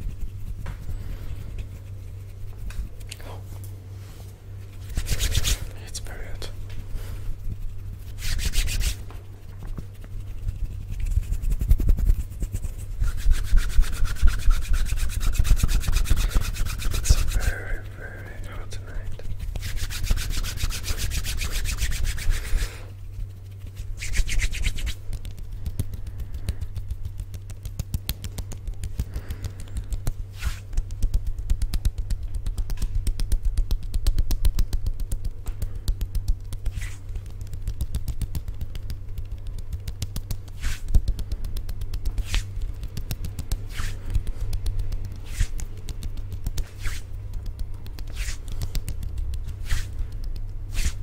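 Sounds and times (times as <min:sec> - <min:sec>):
hands rubbing together: 0:00.0 - 0:51.0
low hum: 0:00.0 - 0:51.0.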